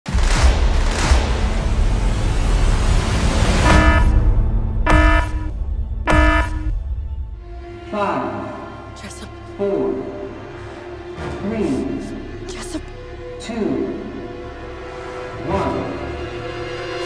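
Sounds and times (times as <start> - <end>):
short horn-like blasts: 3.6 - 5.5, 6.1 - 6.7.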